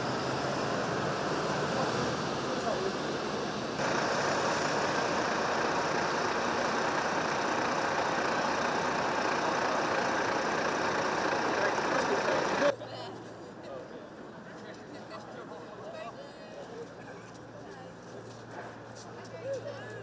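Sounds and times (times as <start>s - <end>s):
indistinct voices of passers-by: 0.0s - 20.0s
road traffic: 0.0s - 20.0s.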